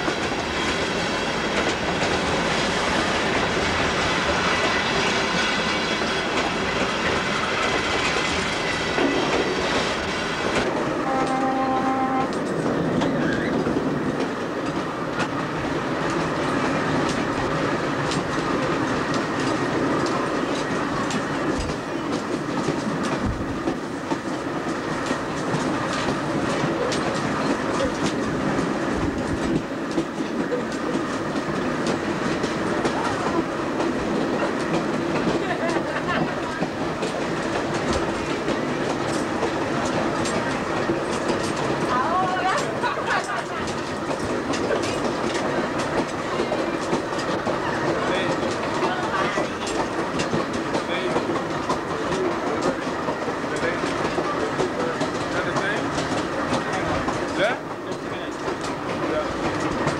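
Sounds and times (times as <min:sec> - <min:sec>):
train rolling rumble: 0:00.0 - 0:59.9
wheels clicking over rail joints: 0:00.0 - 0:59.9
train horn note: 0:10.9 - 0:12.4.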